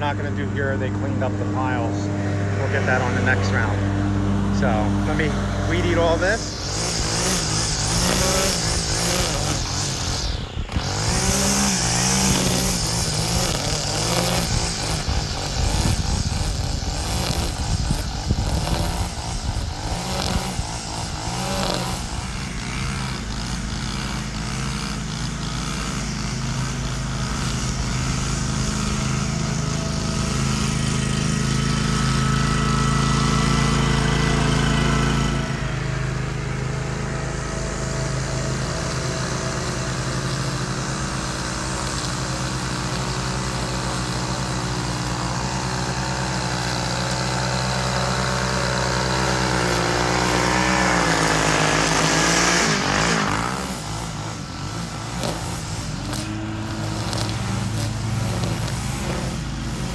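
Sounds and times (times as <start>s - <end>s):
mower engine running: 0.0s - 59.9s
string trimmer cutting grass: 0.0s - 59.9s.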